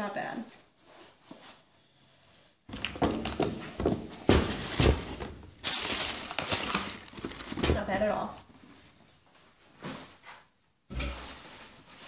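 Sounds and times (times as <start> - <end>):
plastic bag crinkling: 2.7 - 8.4.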